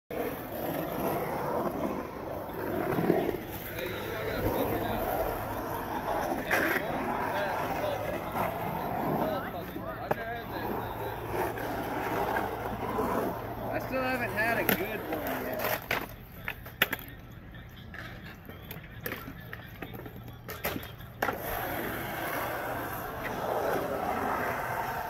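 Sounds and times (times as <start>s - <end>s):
skateboard wheels rolling on concrete: 0.1s - 25.0s
onlookers' voices: 0.3s - 25.0s.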